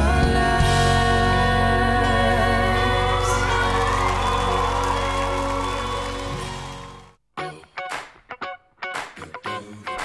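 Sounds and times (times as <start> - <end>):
pop duet with live band: 0.0 - 6.4
audience cheering and applause: 2.8 - 7.2.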